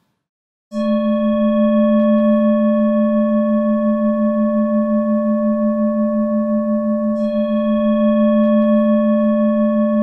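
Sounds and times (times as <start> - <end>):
singing bowl ringing: 0.7 - 10.0.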